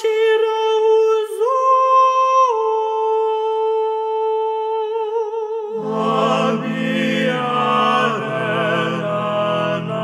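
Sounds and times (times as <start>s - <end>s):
choir voices: 5.7s - 10.0s.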